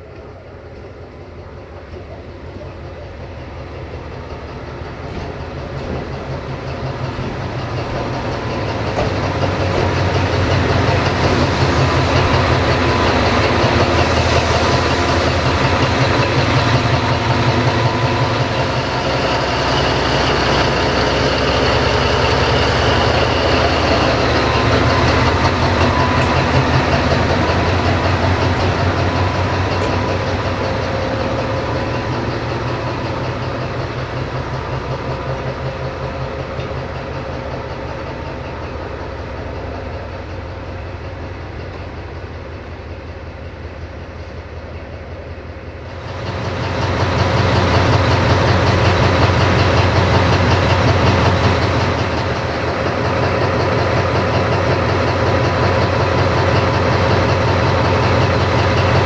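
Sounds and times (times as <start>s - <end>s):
locomotive diesel engine: 0.0s - 59.0s.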